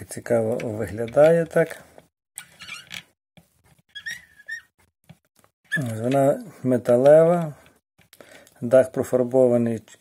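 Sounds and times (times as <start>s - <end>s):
short squeak: 2.4s - 3.0s, 3.9s - 4.8s, 5.7s - 6.0s.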